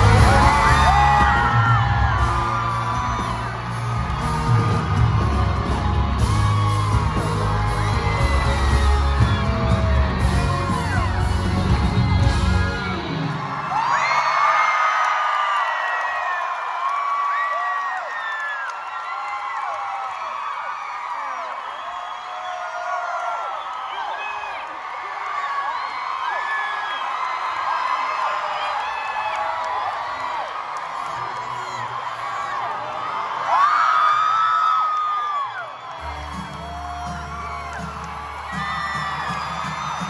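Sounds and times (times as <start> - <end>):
rock band playing live: 0.0 - 13.7
crowd cheering and screaming: 0.0 - 40.0.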